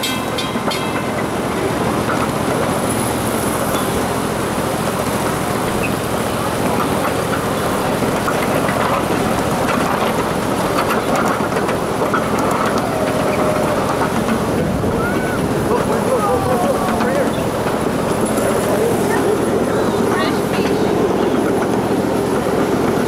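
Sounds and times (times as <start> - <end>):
miniature train rumbling on track: 0.0 - 23.0
faint voices: 6.2 - 22.4.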